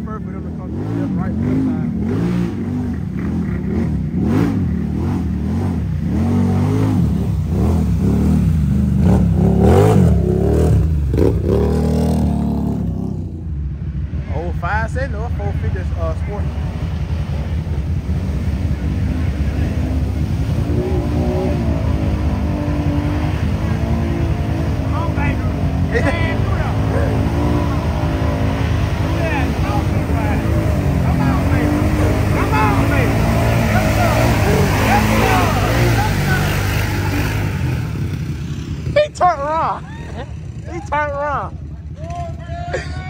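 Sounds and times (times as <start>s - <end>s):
quad revving in mud: 0.0s - 13.5s, 14.1s - 43.0s
engine rumbling: 0.0s - 43.0s.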